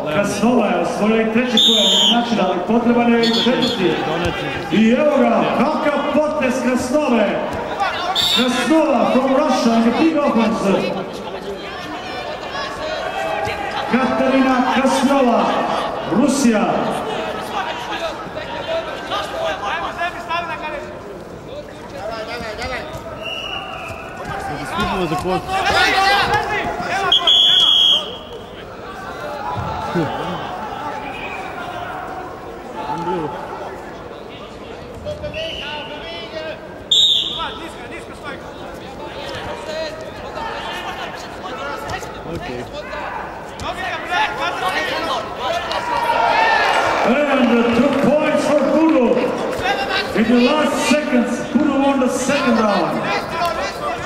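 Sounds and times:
man commentating: 0:00.0 - 0:11.2, 0:47.0 - 0:54.0
referee's whistle blast: 0:01.5 - 0:02.3, 0:03.2 - 0:03.9, 0:08.1 - 0:08.7, 0:23.2 - 0:24.0, 0:27.0 - 0:28.3, 0:36.9 - 0:37.6.

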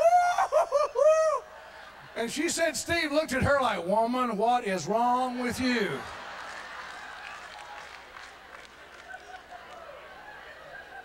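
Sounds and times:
man's falsetto laughing imitation: 0:00.0 - 0:01.5.

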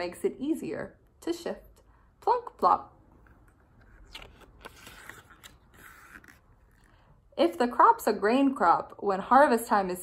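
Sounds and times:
book pages rustling: 0:03.2 - 0:07.1.

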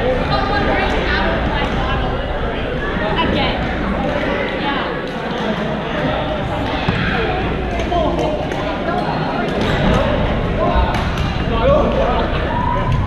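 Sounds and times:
chatter of voices: 0:00.0 - 0:13.0.

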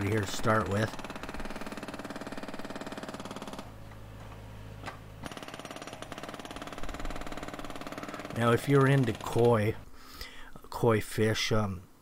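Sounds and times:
hydraulic breaker hammering concrete: 0:00.6 - 0:03.7, 0:05.2 - 0:09.7.

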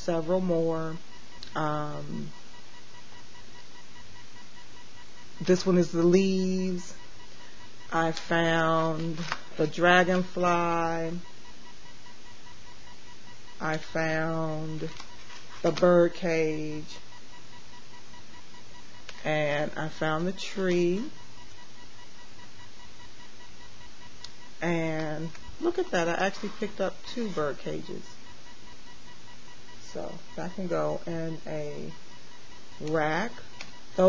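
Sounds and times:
faint high-pitched whine: 0:00.0 - 0:34.0
faint pulsing high tone: 0:00.0 - 0:34.0
microphone hiss: 0:00.0 - 0:34.0.

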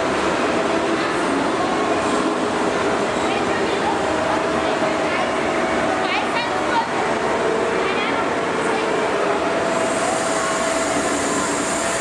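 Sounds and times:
steam locomotive hiss and rumble: 0:00.0 - 0:12.0.

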